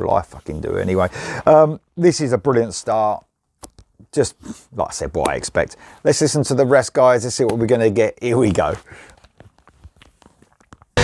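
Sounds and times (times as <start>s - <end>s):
headphones clicking and knocking: 5.1s - 5.6s, 8.4s - 11.0s.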